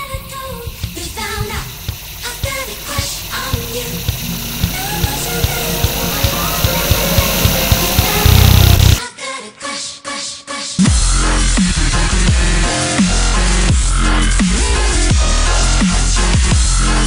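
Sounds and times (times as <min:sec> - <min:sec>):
sung vocal: 0:00.0 - 0:17.0
steady kick drum: 0:00.1 - 0:09.0
rising noise sweep: 0:00.9 - 0:09.0.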